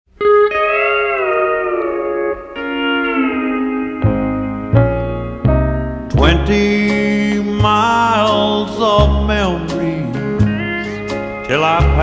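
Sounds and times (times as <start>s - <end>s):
steel guitar sliding chords: 0.2s - 12.0s.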